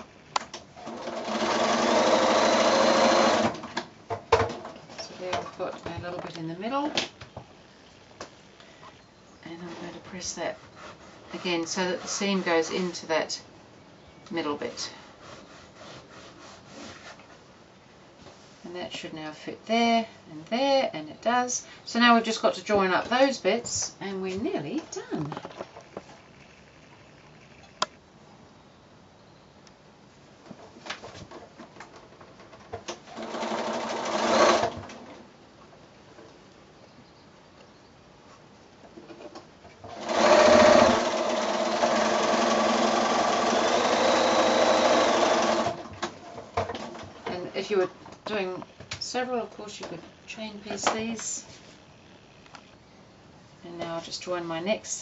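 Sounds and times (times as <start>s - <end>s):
sewing machine stitching: 0.8s - 3.6s, 33.0s - 34.8s, 39.9s - 45.9s
sharp clicks: 25.3s - 28.0s.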